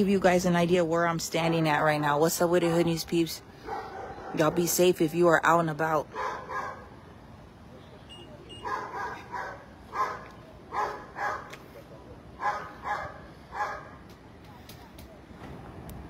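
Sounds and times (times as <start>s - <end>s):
dog barking: 3.6s - 4.7s, 6.1s - 6.9s, 8.6s - 11.5s, 12.4s - 14.0s.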